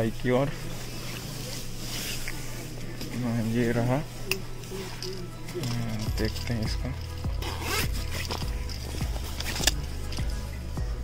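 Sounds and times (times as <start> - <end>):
fabric rustling: 0.0 - 10.7
zipper rasping: 4.6 - 10.6.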